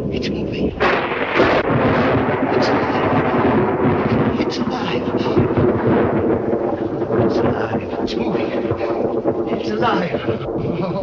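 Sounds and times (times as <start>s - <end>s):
thunder rumbling: 0.0s - 11.0s.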